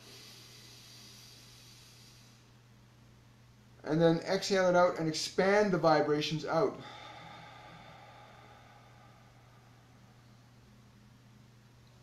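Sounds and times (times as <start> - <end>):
deep breath drawn in: 0.0 - 2.5, 6.7 - 10.8
low steady hum: 0.0 - 12.0.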